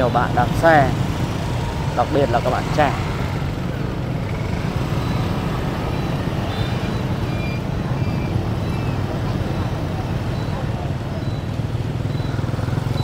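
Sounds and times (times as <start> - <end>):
scooter and motorbike traffic: 0.0 - 13.0.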